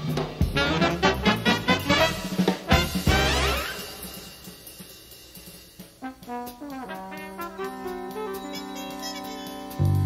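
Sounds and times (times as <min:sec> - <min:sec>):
big band jazz chord: 0:00.0 - 0:04.2, 0:06.0 - 0:08.4
brass section held notes: 0:00.6 - 0:04.0, 0:06.0 - 0:09.9.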